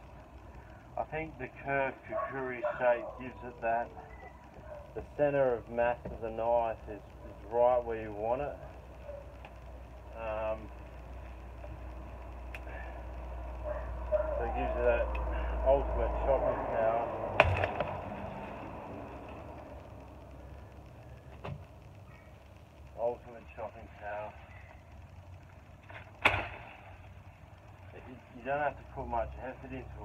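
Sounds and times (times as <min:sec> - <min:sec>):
steady low rumble: 0:00.0 - 0:30.0
twig snapping: 0:12.4 - 0:12.7
machete chopping branch: 0:17.4 - 0:18.0, 0:26.2 - 0:26.8.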